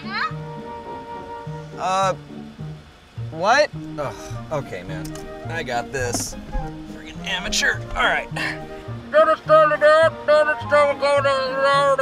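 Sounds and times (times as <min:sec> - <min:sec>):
bass line: 0:03.2 - 0:10.1.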